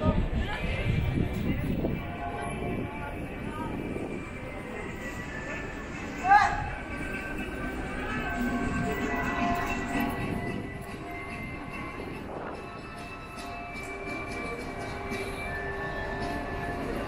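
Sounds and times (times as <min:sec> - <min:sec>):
faint background music: 0:00.0 - 0:17.0
murmur of passers-by: 0:00.0 - 0:17.0.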